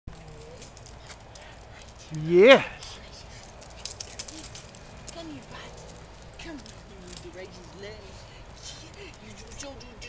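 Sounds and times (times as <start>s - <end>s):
dog whining: 0.1s - 0.9s
dog collar tags clicking: 0.1s - 10.0s.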